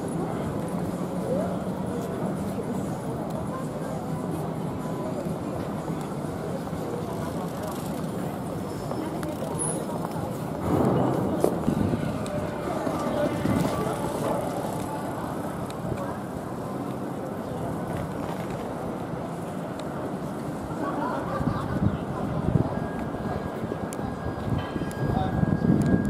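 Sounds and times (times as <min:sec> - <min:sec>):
people talking: 0:00.0 - 0:26.0
traffic noise: 0:00.0 - 0:26.0.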